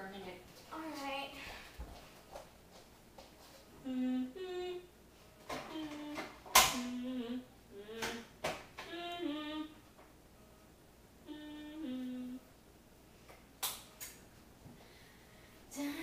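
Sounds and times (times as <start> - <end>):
girl humming: 3.8 - 5.0, 5.6 - 9.9, 11.2 - 12.5.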